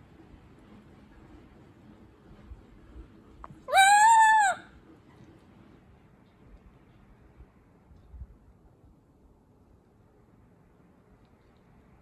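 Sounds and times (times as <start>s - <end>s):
parrot squawk: 3.7s - 4.6s.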